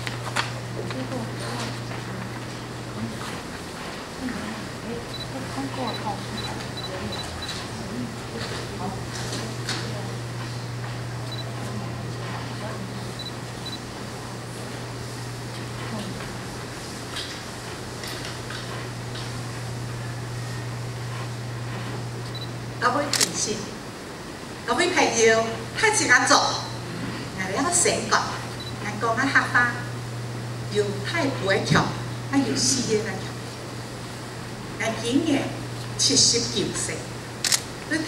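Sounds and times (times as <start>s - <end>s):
low electrical hum: 0.0s - 38.0s
indistinct talking: 0.6s - 16.7s
short high beeps: 5.9s - 7.6s.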